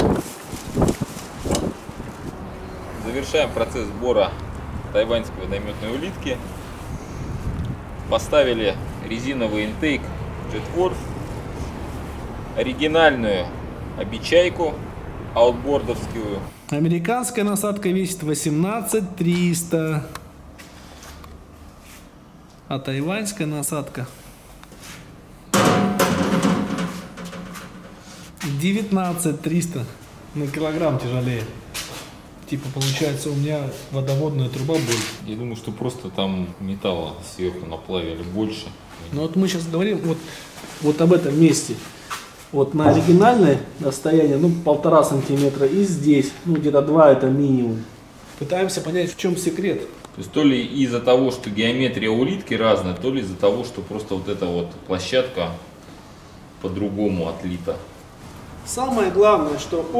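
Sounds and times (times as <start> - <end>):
heavy metal clunk ringing: 25.5 - 28.1.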